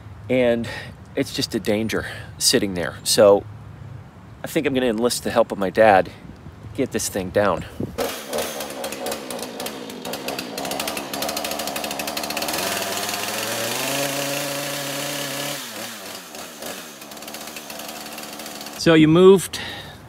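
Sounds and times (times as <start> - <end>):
chainsaw idling and revving: 8.0 - 18.9.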